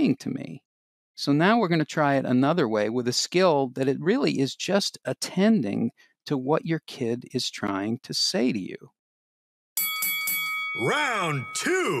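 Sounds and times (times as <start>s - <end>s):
bright bell-like dings: 9.8s - 12.0s
announcer voice calling out: 10.8s - 12.0s.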